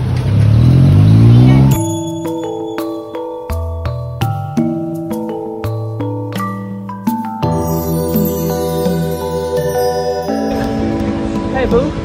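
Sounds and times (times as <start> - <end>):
car engine accelerating: 0.0 - 2.5
street traffic: 0.0 - 12.0
keyboard background music: 1.0 - 12.0.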